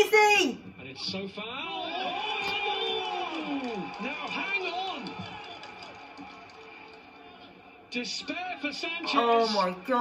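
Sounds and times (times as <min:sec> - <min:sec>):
television match audio: 0:00.0 - 0:10.0.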